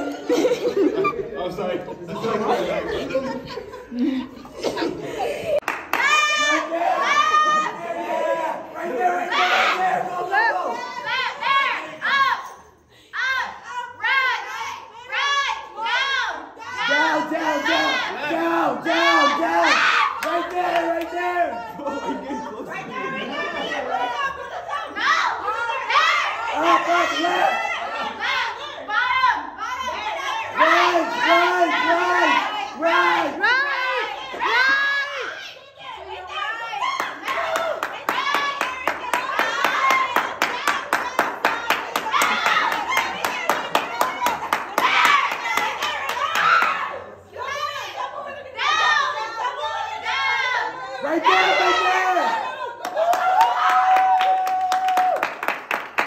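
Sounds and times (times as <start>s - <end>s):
people clapping in rhythm: 5.6s - 6.3s, 37.0s - 46.8s, 52.8s - 56.0s
group of people shouting: 6.0s - 12.5s, 13.2s - 41.0s, 41.6s - 55.0s.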